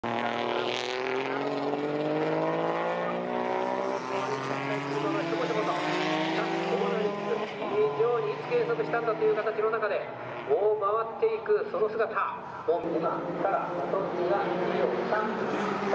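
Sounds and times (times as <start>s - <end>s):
car engine revving hard: 0.0s - 10.5s, 12.8s - 15.9s.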